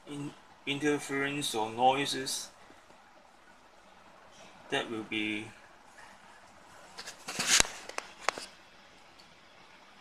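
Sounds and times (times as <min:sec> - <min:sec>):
foil crinkling rustle: 0:06.9 - 0:08.5.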